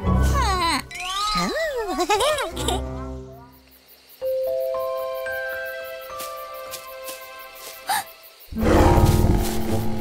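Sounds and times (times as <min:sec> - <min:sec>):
background music: 0:00.0 - 0:03.6, 0:04.2 - 0:10.0.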